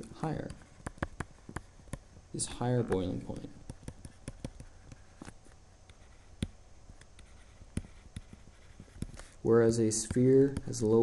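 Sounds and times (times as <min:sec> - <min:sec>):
stylus tapping on drawing tablet: 0:00.4 - 0:09.2, 0:10.1 - 0:10.9.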